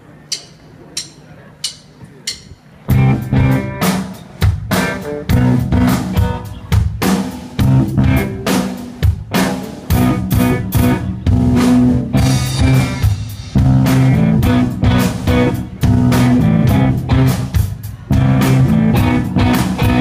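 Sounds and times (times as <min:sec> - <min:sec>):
drum kit beating: 0:00.0 - 0:20.0
electric bass: 0:02.9 - 0:06.6, 0:07.5 - 0:20.0
electric guitars: 0:02.9 - 0:20.0.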